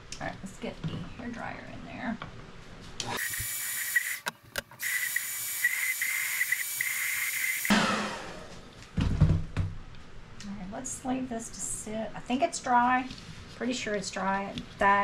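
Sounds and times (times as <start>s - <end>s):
hot-air blower hissing and whining: 3.0s - 8.7s.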